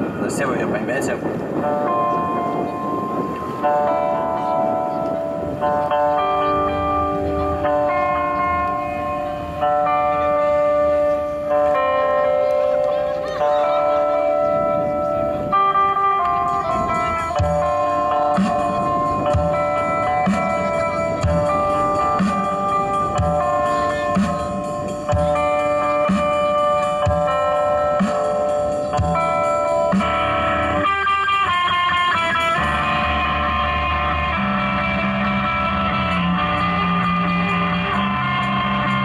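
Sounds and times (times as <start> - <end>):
electric guitar chords: 0.0 - 39.0.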